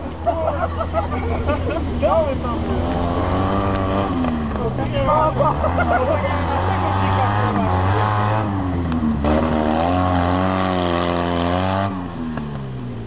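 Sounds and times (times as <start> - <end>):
rally car engine running hard: 0.0 - 13.0.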